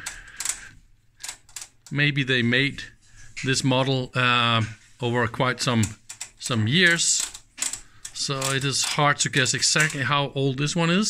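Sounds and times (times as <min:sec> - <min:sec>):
rotary switch clicking: 0:05.8 - 0:10.0.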